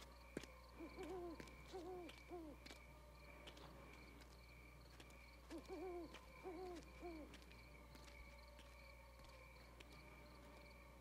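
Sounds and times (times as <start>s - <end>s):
owl hooting: 0.7s - 2.7s, 5.4s - 7.4s.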